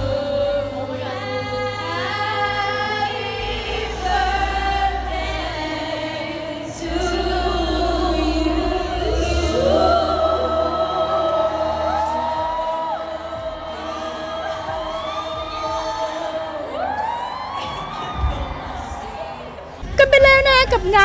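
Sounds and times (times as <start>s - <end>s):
woman singing into a microphone: 0.0s - 19.3s
live concert music: 0.0s - 21.0s
crowd cheering: 9.6s - 21.0s.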